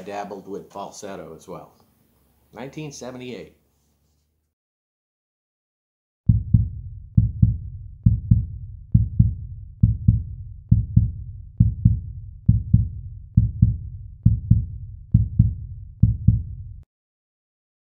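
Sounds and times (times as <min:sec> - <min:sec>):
heartbeat double thumps: 0:06.3 - 0:16.9.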